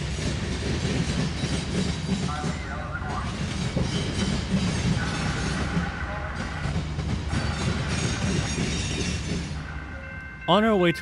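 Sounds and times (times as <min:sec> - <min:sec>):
train wheels rumbling on rails: 0:00.0 - 0:11.0.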